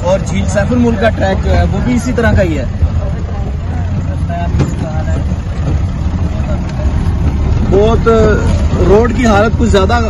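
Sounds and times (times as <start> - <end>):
faint voices: 0.0 - 10.0
off-road vehicle engine rumble: 0.0 - 10.0.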